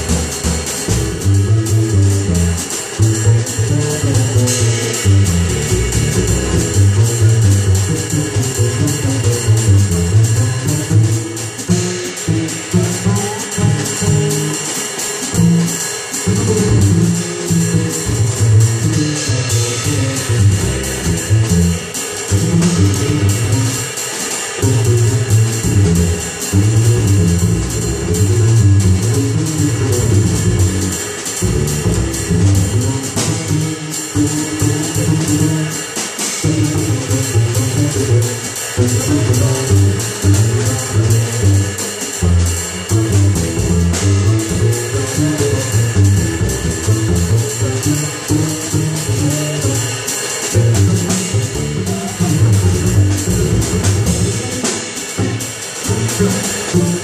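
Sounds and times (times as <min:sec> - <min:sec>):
drums played on cymbals: 0:00.0 - 0:57.0
plucked double bass: 0:00.0 - 0:57.0.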